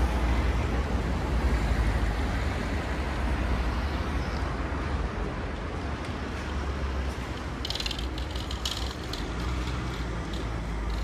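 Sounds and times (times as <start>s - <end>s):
low rumble of road traffic: 0.0s - 11.0s
fast high ticking: 7.4s - 11.0s.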